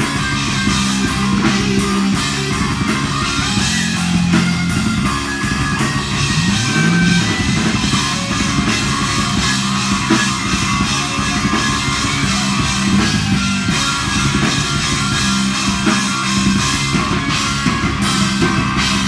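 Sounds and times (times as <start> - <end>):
distorted electric guitar riffing: 0.0 - 19.0
drum kit: 0.0 - 19.0
sliding guitar note: 6.2 - 7.8.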